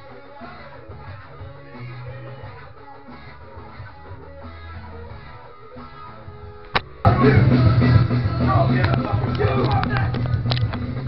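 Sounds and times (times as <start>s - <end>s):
guitar music: 0.0s - 11.0s.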